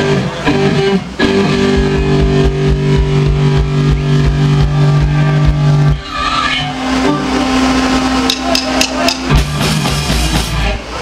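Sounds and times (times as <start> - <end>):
live ska band playing: 0.0 - 11.0
sharp drum strikes: 1.5 - 6.0, 8.2 - 10.6.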